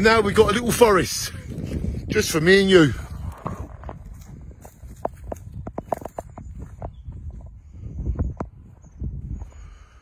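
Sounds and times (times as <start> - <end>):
dry vegetation crackling underfoot: 0.0 - 7.8
footsteps on dry ground: 0.0 - 10.0.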